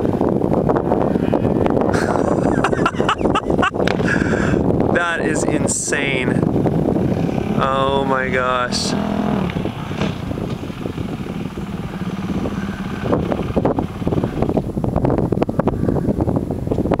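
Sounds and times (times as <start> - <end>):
wind buffeting microphone: 0.0 - 17.0
motorcycle engine at low revs: 6.1 - 15.6.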